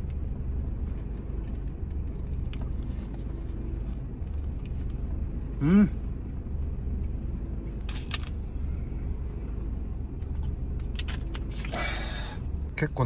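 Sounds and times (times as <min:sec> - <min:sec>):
diesel truck engine idling: 0:00.0 - 0:13.0.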